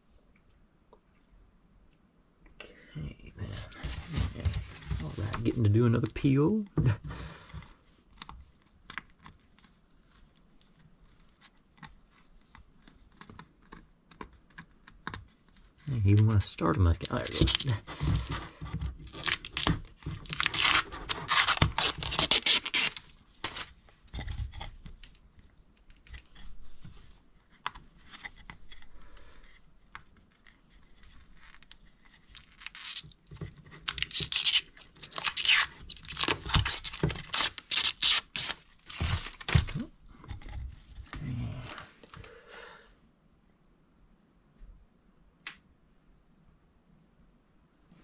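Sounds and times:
protective film peeling off plastic: 15.9s - 18.3s, 19.0s - 25.2s, 30.3s - 39.9s.

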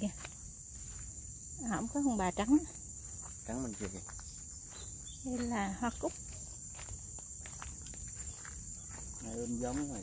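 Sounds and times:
footsteps on dirt path: 0.0s - 10.0s
high-pitched insect trill: 0.0s - 10.0s.

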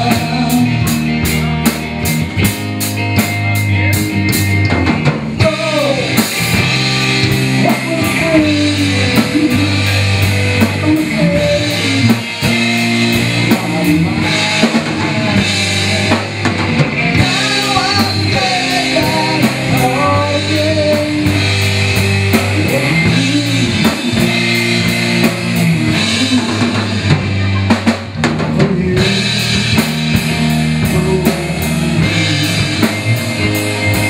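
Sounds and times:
electric guitar lead line: 0.0s - 34.0s
live rock band playing: 0.0s - 34.0s.

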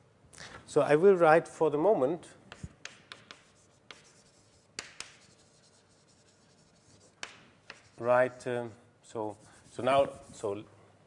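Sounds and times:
taps on writing board: 2.5s - 4.1s, 4.8s - 5.2s, 7.2s - 7.9s
faint scratching: 2.5s - 8.4s, 9.1s - 10.6s.

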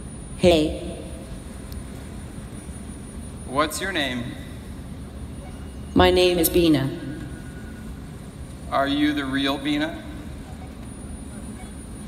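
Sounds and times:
faint high-pitched whine: 0.0s - 12.0s
low hall background rumble: 0.0s - 12.0s.

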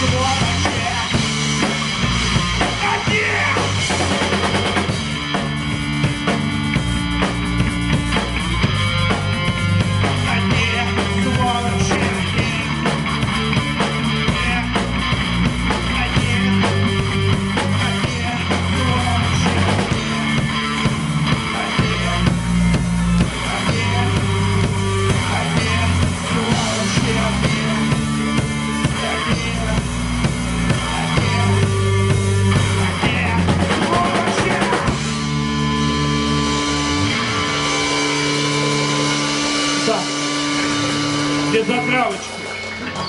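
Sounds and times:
bass guitar: 0.0s - 43.0s
drum kit: 0.0s - 43.0s
electric guitar: 0.0s - 43.0s.

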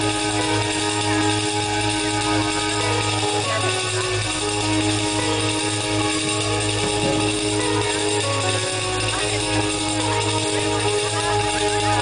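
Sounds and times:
electric guitar: 0.0s - 12.0s
folk band music: 0.0s - 12.0s.

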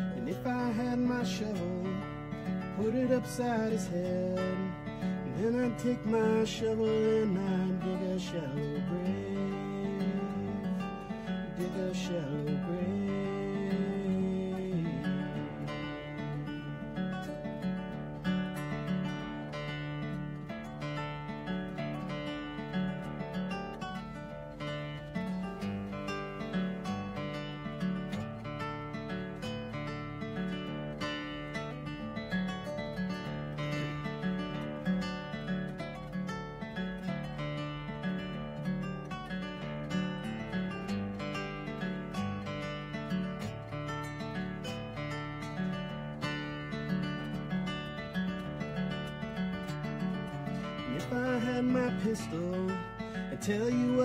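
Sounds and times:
acoustic blues guitar: 0.0s - 54.0s.

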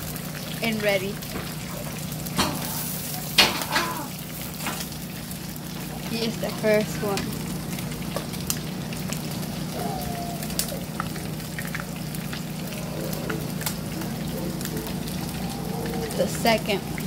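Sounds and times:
fish sizzling in hot oil: 0.0s - 17.0s
oil crackling and popping: 0.0s - 17.0s.

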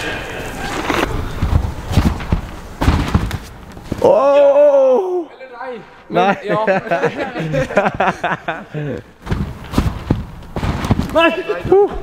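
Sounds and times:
thuds on tumbling track: 1.3s - 4.0s, 9.2s - 12.0s
heavy landing thud on mat: 1.4s - 4.0s, 9.2s - 11.8s.

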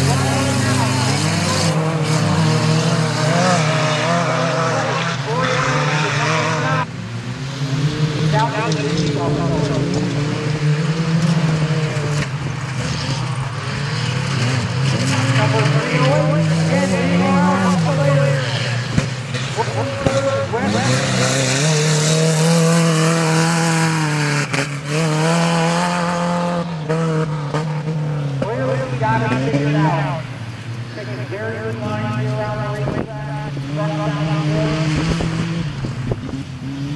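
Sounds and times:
pickup truck engines racing: 0.0s - 36.9s.

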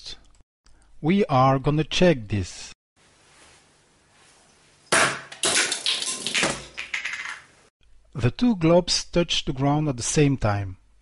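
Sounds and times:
objects bouncing and rattling: 4.9s - 7.6s
globes clattering on floor: 5.3s - 7.5s.

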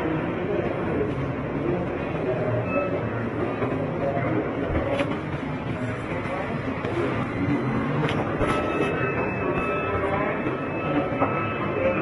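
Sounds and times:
indistinct chatter of many people: 0.0s - 12.0s.

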